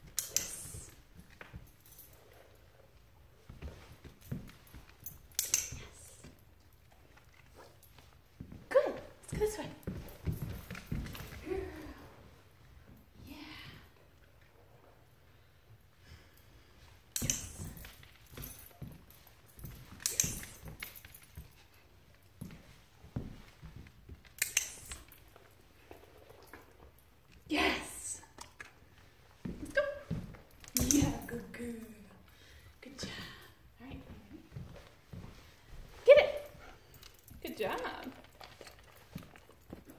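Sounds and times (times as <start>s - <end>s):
dog's paws on hardwood floor: 0.0s - 39.9s
footsteps on hardwood floor: 3.4s - 6.4s, 7.8s - 12.0s, 17.2s - 25.3s, 28.9s - 31.6s, 32.9s - 39.9s
metallic jingle: 4.2s - 6.5s, 17.1s - 21.8s, 29.9s - 31.9s
footfalls on wooden floor: 8.4s - 11.8s.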